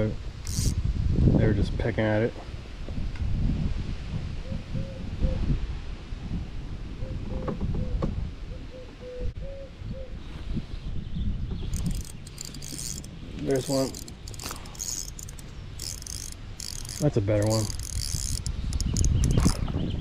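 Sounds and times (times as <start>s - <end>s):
spinning reel ticking: 0.4s - 0.8s, 11.7s - 19.6s.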